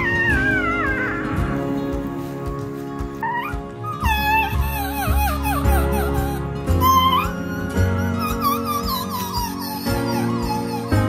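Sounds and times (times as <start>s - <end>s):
puppies squealing: 0.0s - 1.8s, 3.2s - 11.0s
background music sustained tones: 0.0s - 11.0s.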